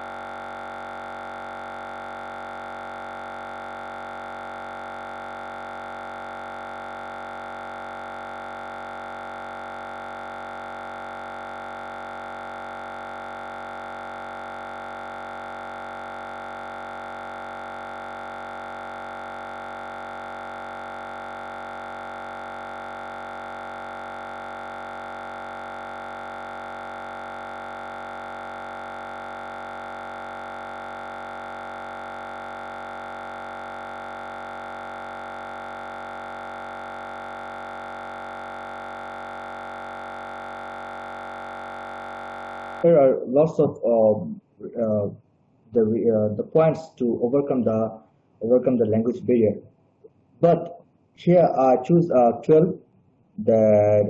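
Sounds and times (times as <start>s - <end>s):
steady electronic hum: 0.0s - 52.8s.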